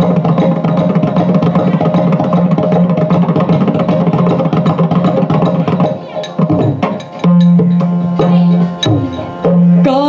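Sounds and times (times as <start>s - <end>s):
barrel drum played by hand: 0.0s - 10.0s.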